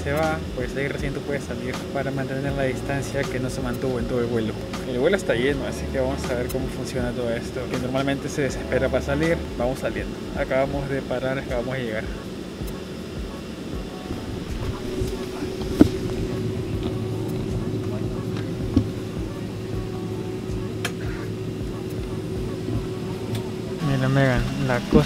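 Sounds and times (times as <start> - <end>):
airliner cabin hum: 0.0 - 25.0.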